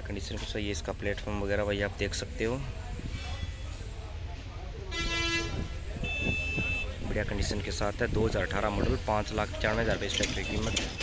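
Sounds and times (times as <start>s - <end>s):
vehicle horn toot: 4.9s - 7.0s.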